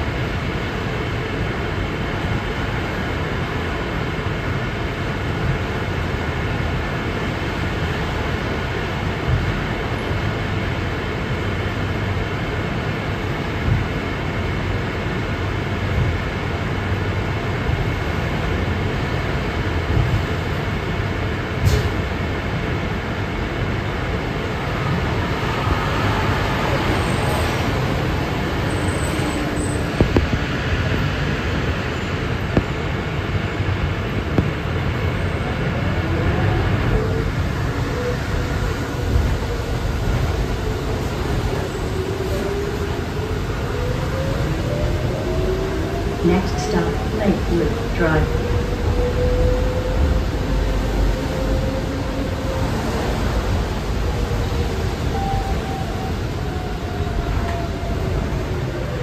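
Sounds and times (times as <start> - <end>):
bus cabin low rumble: 0.0 - 59.0
cars passing outside: 24.1 - 59.0.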